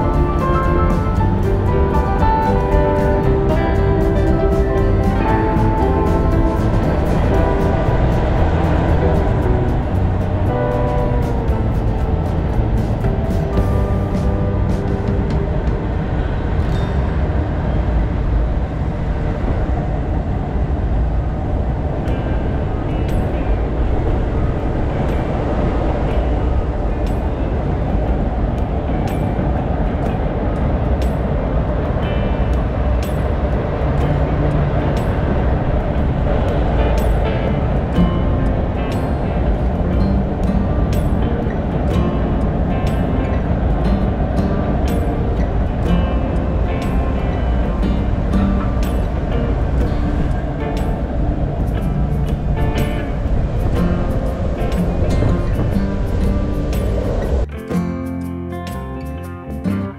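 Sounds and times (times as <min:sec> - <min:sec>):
train rumbling over steel bridge: 0:00.0 - 0:57.9.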